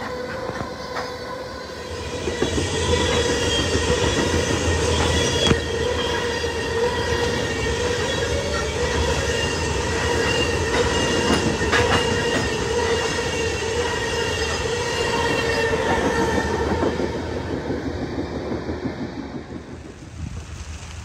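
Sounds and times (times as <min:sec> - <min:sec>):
wheel squeal: 0:00.0 - 0:16.6
train wheels rumbling on rail: 0:00.0 - 0:21.0
wheels clacking over rail joints: 0:02.2 - 0:21.0.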